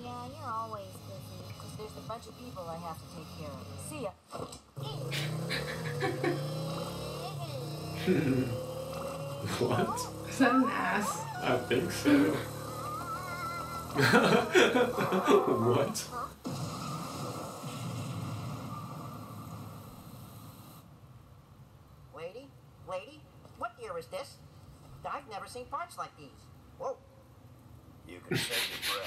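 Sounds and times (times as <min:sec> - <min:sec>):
motor scooter engine running: 0:04.8 - 0:16.6.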